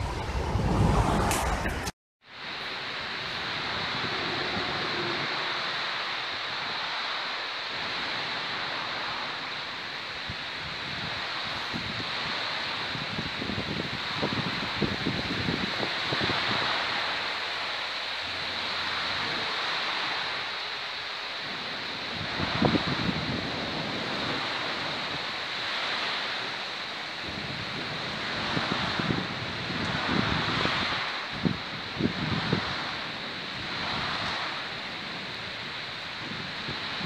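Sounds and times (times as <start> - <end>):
wind bumps on microphone: 0.0 - 1.9, 3.1 - 7.0, 10.1 - 17.4, 21.4 - 37.0
running water hissing: 2.3 - 37.0.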